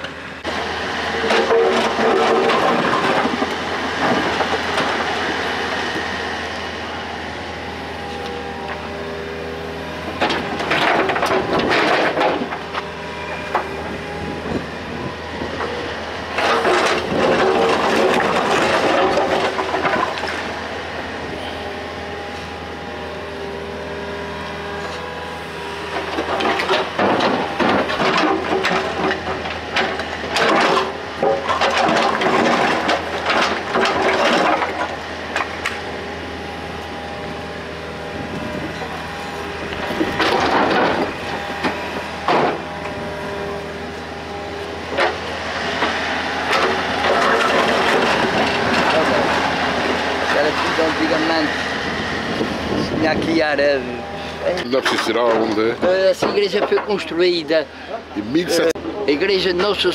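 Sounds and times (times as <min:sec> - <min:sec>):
excavator diesel engine running: 0:00.0 - 0:59.9
bucket clattering and scraping rubble: 0:01.1 - 0:06.0, 0:10.2 - 0:12.8, 0:16.3 - 0:20.6, 0:26.0 - 0:35.6, 0:38.4 - 0:42.8, 0:44.8 - 0:51.5, 0:52.7 - 0:59.9.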